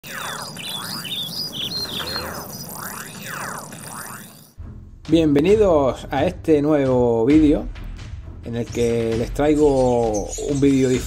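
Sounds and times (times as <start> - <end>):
bird calls sweeping in pitch: 0.0 - 4.4
birds chirping: 0.0 - 4.6, 8.8 - 11.0.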